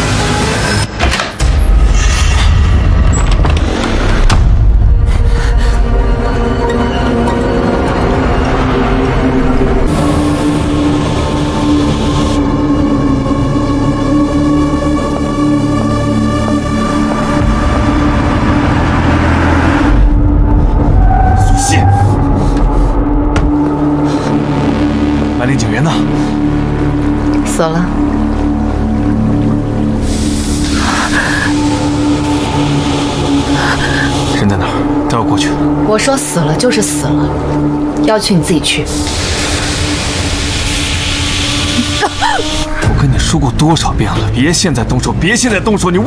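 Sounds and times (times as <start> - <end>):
low drone notes: 0.0 - 46.0
low sustained background score: 0.0 - 46.0
hiss: 39.0 - 42.8.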